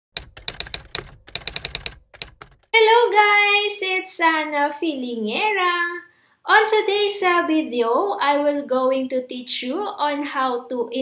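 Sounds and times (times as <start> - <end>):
keyboard typing clicks: 0.1 - 2.7
woman's high drawn-out voice: 2.8 - 11.0.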